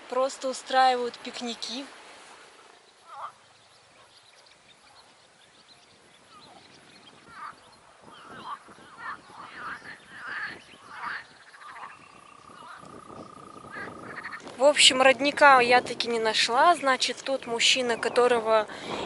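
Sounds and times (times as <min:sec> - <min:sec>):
frogs croaking: 0:02.9 - 0:05.2, 0:06.2 - 0:14.5.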